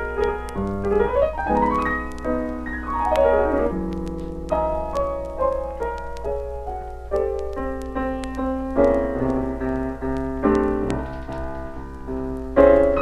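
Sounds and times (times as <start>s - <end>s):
blues piano four-hands: 0.0s - 13.0s
record surface clicks: 0.0s - 13.0s.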